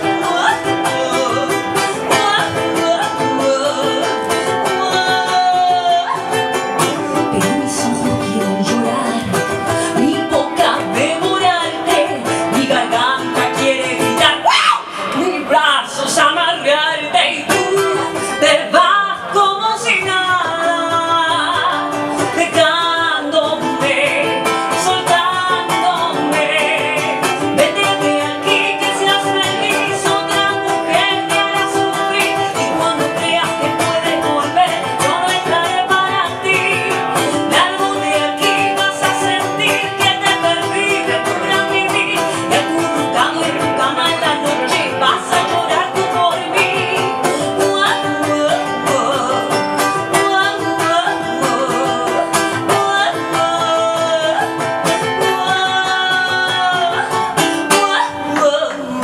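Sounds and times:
woman singing: 0:00.0 - 0:59.0.

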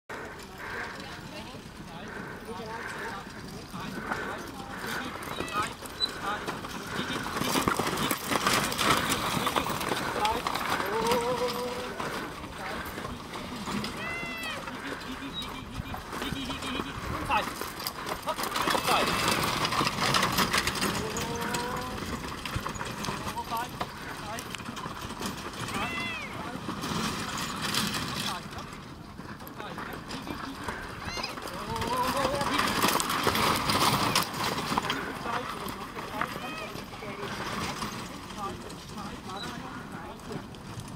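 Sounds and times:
shouted calls: 0:00.1 - 0:08.1, 0:13.8 - 0:17.5, 0:25.7 - 0:26.6
carriage wheels rolling: 0:00.1 - 0:40.9
hooves on soft ground: 0:00.1 - 0:40.9.

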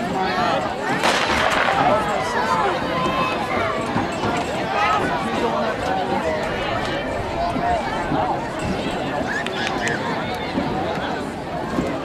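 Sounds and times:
crowd chatter: 0:00.0 - 0:12.0
starter's pistol shot with echo: 0:01.0 - 0:02.0.

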